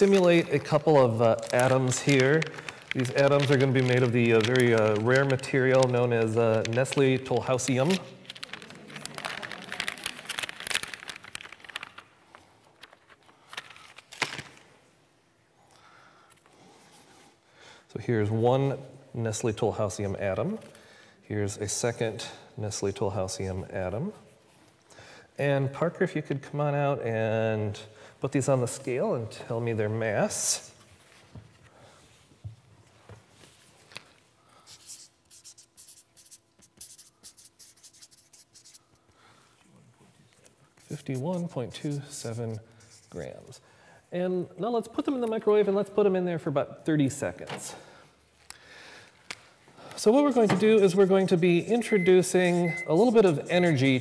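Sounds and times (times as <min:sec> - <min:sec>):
packaging crinkling and crackling: 0:00.0 - 0:14.8
marker pen scratching on paper: 0:34.6 - 0:39.0, 0:40.7 - 0:43.5, 0:50.0 - 0:54.0.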